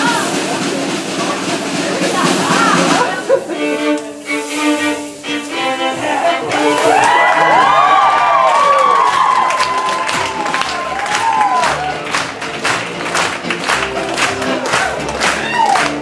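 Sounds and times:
rhythmic clapping: 0:00.0 - 0:16.0
live fiddle music: 0:01.2 - 0:08.0
audience cheering and whooping: 0:06.3 - 0:12.3, 0:14.3 - 0:16.0.

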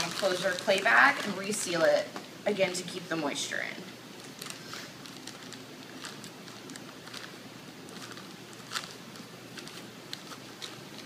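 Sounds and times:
plastic bag crinkling: 0:00.0 - 0:02.0, 0:04.1 - 0:11.0.

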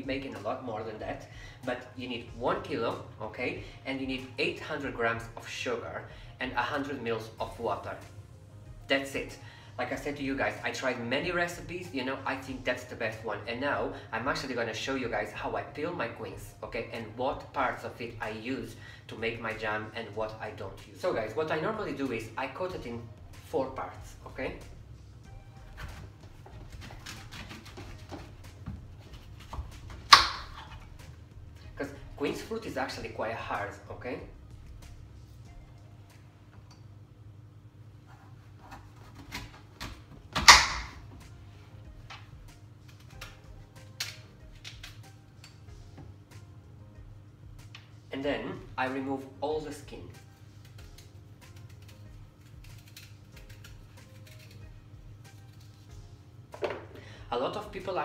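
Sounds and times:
quiet background music: 0:00.0 - 0:58.0
knife cutting fruit: 0:25.7 - 0:31.2, 0:50.3 - 0:56.0.

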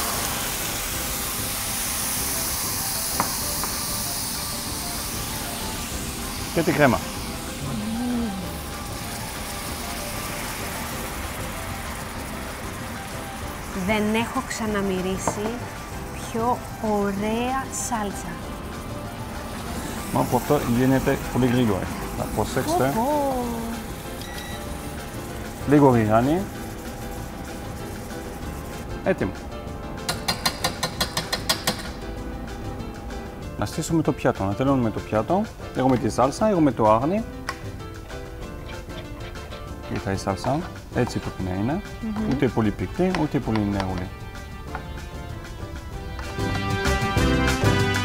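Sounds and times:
pan sauce sizzling: 0:00.0 - 0:48.0
cream whisked in pan: 0:23.6 - 0:29.3
whisk clicking against metal pan: 0:30.0 - 0:32.0.

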